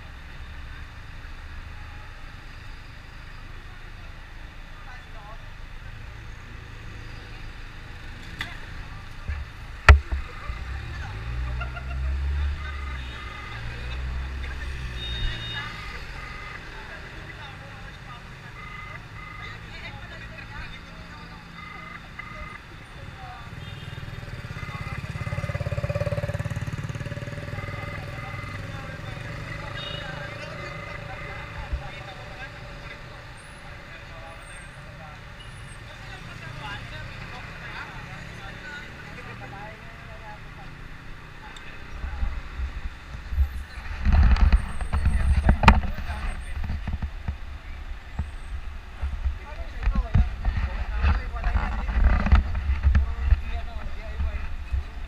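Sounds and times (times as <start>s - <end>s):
road traffic rumble: 0.0s - 55.0s
vehicle passing loudly: 23.1s - 35.0s.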